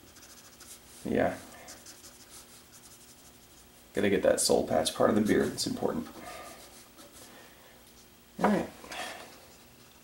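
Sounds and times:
marker pen scratching on paper: 0.0 - 0.9, 1.6 - 3.7.

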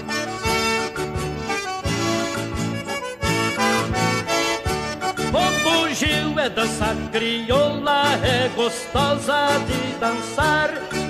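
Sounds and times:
accordion playing: 0.0 - 11.0.

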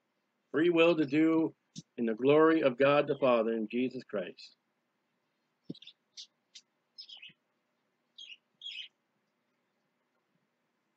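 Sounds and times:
bird chirping: 5.6 - 7.5, 8.1 - 9.0.

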